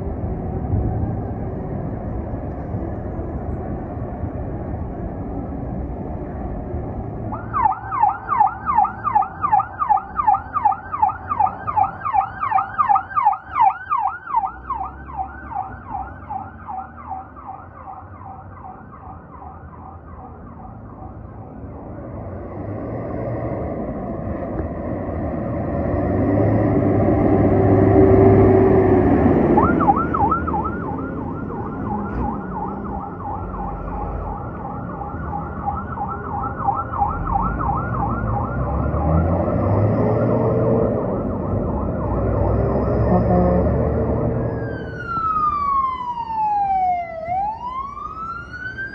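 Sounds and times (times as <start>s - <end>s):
heavy truck engine: 0.0s - 7.6s, 20.3s - 48.3s
fire truck siren yelping: 7.3s - 22.0s, 28.0s - 48.9s.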